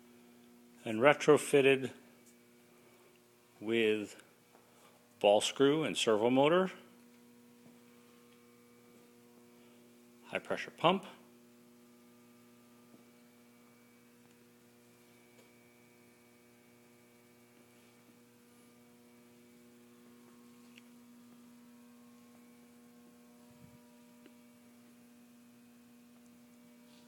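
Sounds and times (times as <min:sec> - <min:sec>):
faint mains hum: 0:00.0 - 0:27.0.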